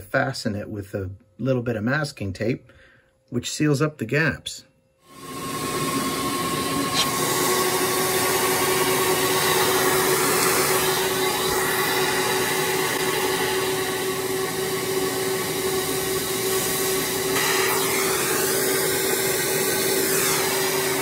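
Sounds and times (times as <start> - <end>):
shop vac running with whine: 5.0 - 21.0
electric hair clippers cutting: 5.1 - 21.0.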